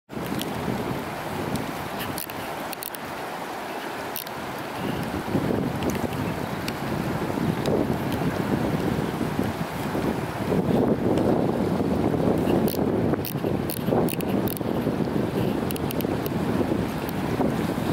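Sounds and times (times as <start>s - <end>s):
river water running over rocks: 0.1s - 17.9s
wind buffeting microphone: 0.1s - 17.9s.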